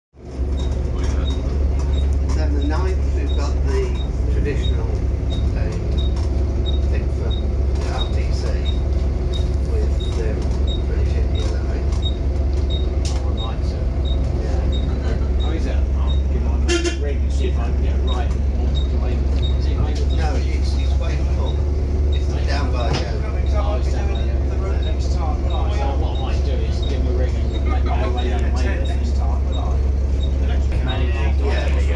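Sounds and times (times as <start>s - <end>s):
bus diesel engine drone: 0.2s - 31.9s.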